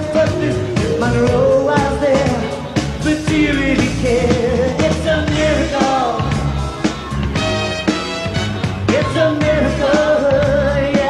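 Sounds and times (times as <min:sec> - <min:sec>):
person singing: 0:00.0 - 0:06.9, 0:08.9 - 0:11.0
live pop band playing: 0:00.0 - 0:11.0.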